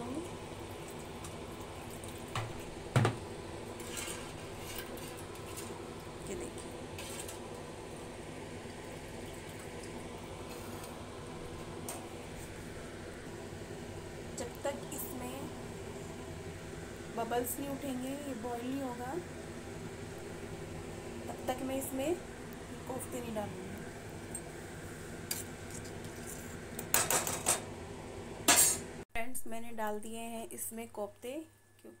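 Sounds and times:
clinks and scrapes of stirring: 3.8 - 5.7, 7.0 - 7.4.

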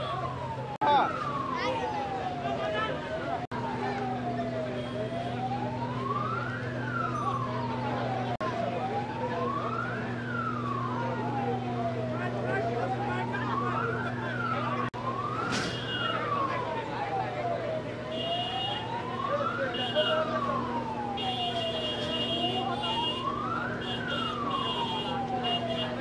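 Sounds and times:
crowd voices: 0.0 - 26.0
emergency siren wailing: 0.0 - 26.0.

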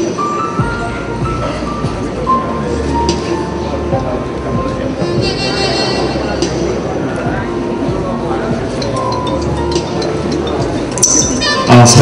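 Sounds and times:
audience chatter: 0.0 - 12.0
background music: 0.0 - 12.0.

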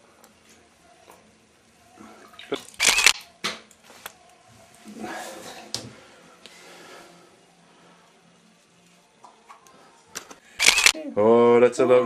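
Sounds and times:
camera shutter: 2.8 - 3.3, 10.6 - 11.0.

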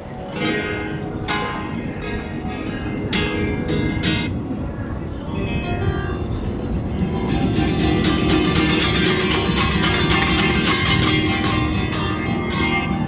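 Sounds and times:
acoustic guitar strumming: 0.2 - 4.3, 5.5 - 13.0.

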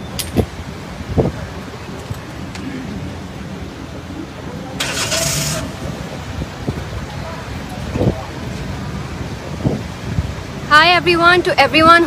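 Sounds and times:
low rumble of idling cars: 0.0 - 12.0.

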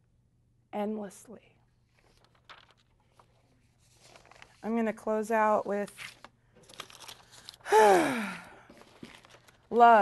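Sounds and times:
woman sighing: 7.6 - 8.8.

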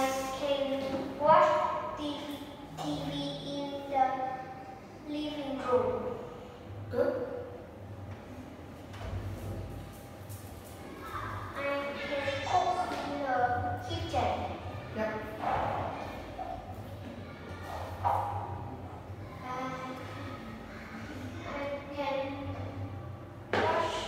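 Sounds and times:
child talking into headset microphone: 0.0 - 4.4, 5.0 - 6.1, 10.9 - 15.0, 19.4 - 22.8
steady low hum: 0.0 - 24.0.

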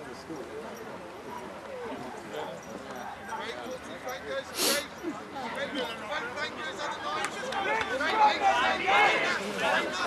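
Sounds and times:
distant indistinct chatter: 0.0 - 10.0.

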